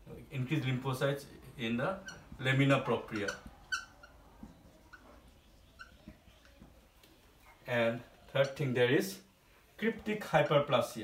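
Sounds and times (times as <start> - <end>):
marker squeaking on whiteboard: 1.7 - 8.8.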